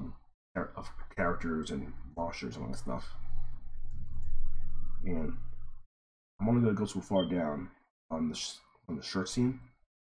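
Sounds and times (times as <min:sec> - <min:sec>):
computer mouse and keyboard clicks: 0:03.3 - 0:04.7.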